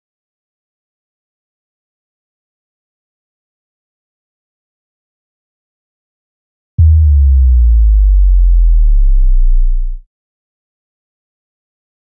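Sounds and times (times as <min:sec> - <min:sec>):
deep sub-bass synth note: 0:06.8 - 0:10.0.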